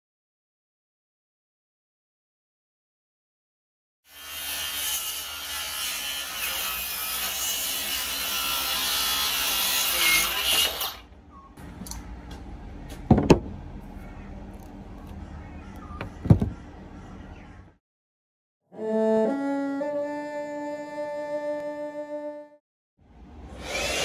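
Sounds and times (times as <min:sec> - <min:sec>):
power saw cutting wood: 0:04.1 - 0:11.1, 0:23.5 - 0:24.0
thump: 0:13.1 - 0:13.5.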